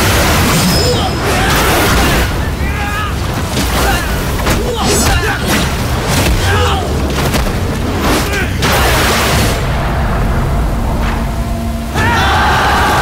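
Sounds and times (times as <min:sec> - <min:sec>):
rushing noise: 0:00.0 - 0:13.0
men shouting and grunting: 0:00.8 - 0:07.3, 0:08.0 - 0:08.7, 0:11.9 - 0:13.0
deep low rumble: 0:09.6 - 0:12.0.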